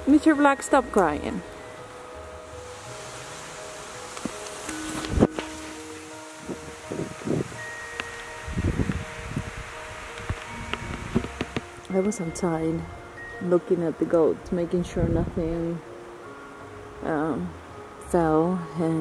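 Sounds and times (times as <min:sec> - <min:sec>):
low rumbles of wind gusts: 0:00.0 - 0:19.0
soft background music: 0:00.0 - 0:19.0
wind and rain in trees: 0:00.0 - 0:19.0.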